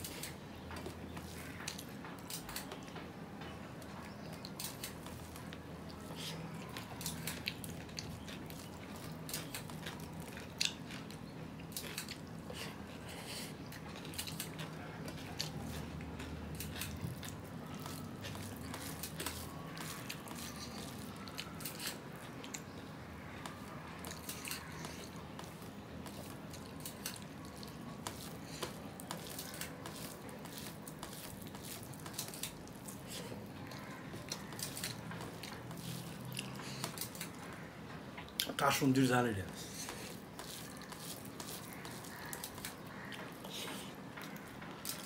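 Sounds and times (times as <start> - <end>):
man chewing food: 0.0 - 45.0.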